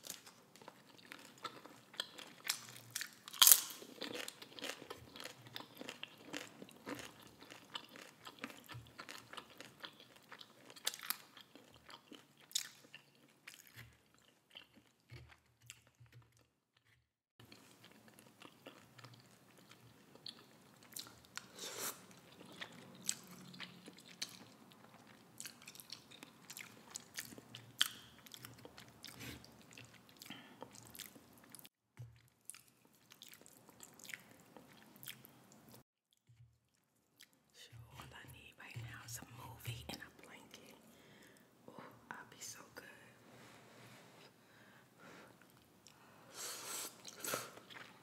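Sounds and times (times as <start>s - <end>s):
chewing noodles: 0.0s - 37.5s, 46.8s - 48.0s.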